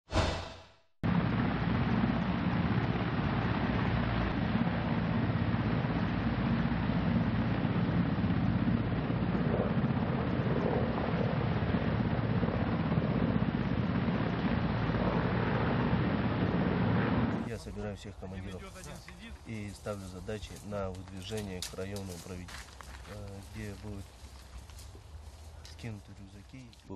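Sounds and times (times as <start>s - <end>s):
helicopter turbines and rotors: 1.0s - 22.2s.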